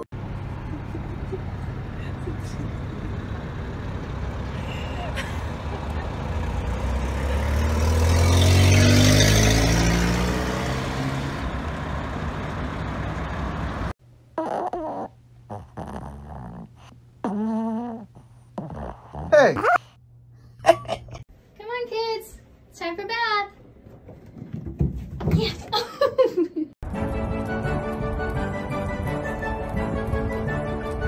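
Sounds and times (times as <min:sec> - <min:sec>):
vehicle engine accelerating: 0:00.0 - 0:14.0.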